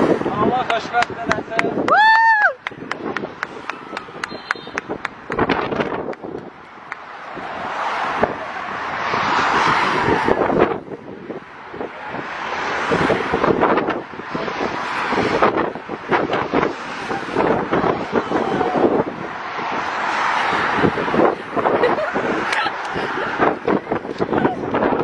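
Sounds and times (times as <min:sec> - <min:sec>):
highway traffic passing: 0:00.0 - 0:25.0
wind buffeting microphone: 0:00.0 - 0:25.0.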